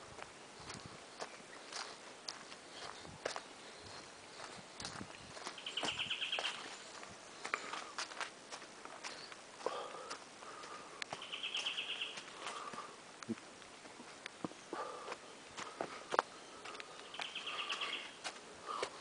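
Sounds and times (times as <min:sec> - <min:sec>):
footsteps crunching leaves and twigs: 0:00.1 - 0:19.0.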